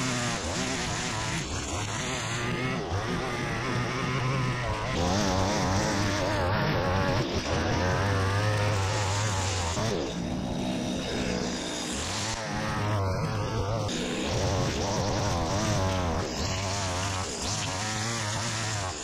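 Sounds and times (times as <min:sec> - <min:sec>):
line cutting grass: 0:00.0 - 0:19.0
line trimmer engine running: 0:00.0 - 0:19.0.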